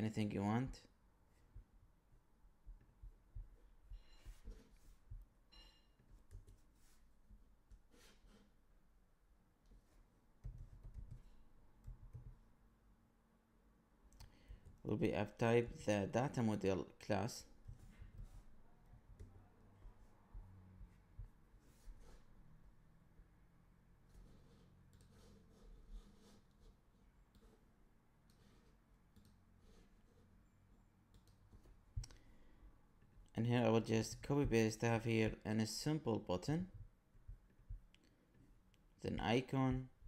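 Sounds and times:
typing on a computer keyboard: 10.4 - 12.4.

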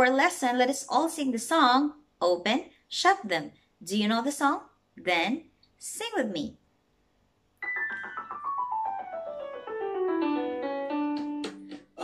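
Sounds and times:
piano descending run: 7.6 - 11.6
piano chords: 7.6 - 11.8.

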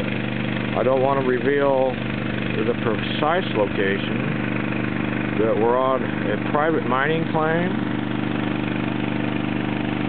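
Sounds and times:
small gasoline engine running: 0.0 - 10.0.

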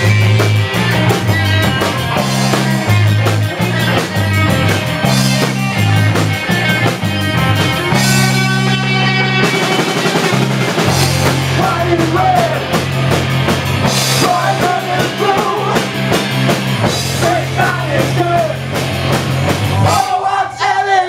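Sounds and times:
drum kit beating: 0.0 - 21.0
fuzz guitar and bass riff: 0.0 - 21.0.

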